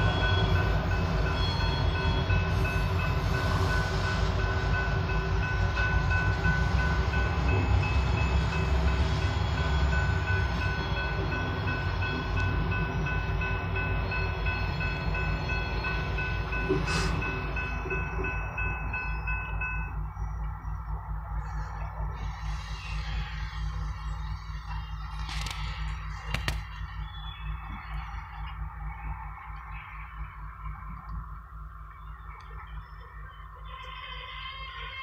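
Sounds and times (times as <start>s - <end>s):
crossing bell ringing: 0.0s - 22.3s
sharp clicks: 25.1s - 26.8s.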